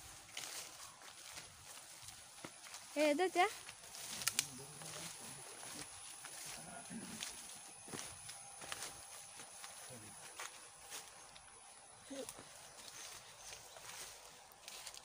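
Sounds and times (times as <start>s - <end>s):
footsteps through leafy ground cover: 0.0s - 15.0s
plants rustling: 0.0s - 15.0s.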